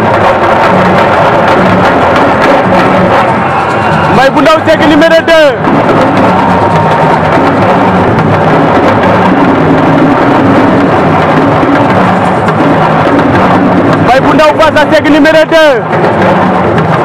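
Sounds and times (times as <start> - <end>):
music with drumming and percussion: 0.0 - 17.0.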